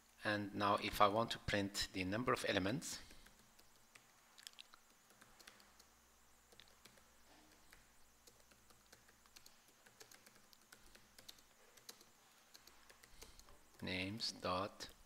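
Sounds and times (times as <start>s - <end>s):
typing on a keyboard: 3.0s - 5.9s, 6.5s - 13.5s.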